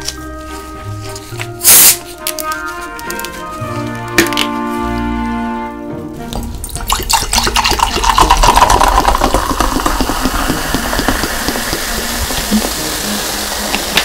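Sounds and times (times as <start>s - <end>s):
carbonation fizzing: 6.4s - 14.0s
soda pouring into a glass: 6.6s - 14.0s.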